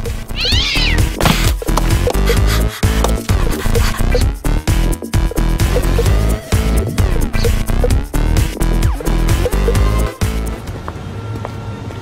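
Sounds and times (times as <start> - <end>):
background music with steady beat: 0.0 - 10.8
cat meowing: 0.3 - 1.1.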